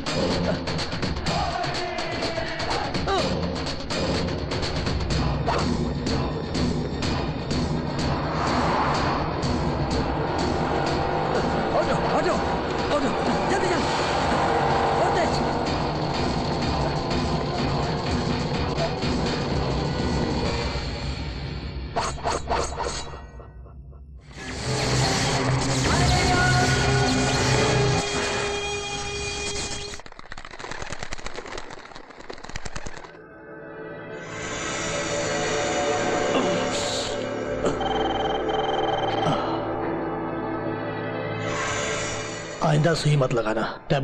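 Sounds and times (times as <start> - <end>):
dramatic action film score: 0.0 - 30.1, 32.2 - 44.0.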